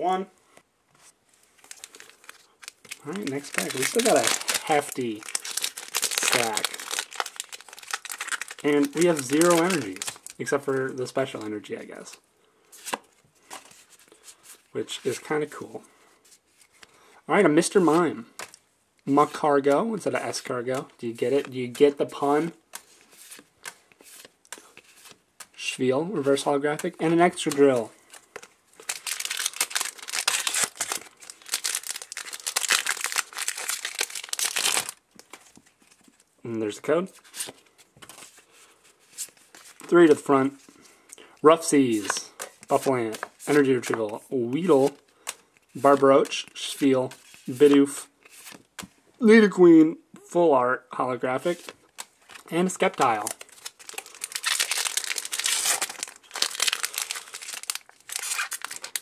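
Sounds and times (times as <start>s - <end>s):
foil wrapper crinkling and tearing: 1.6s - 10.5s, 28.2s - 35.4s, 51.9s - 59.0s.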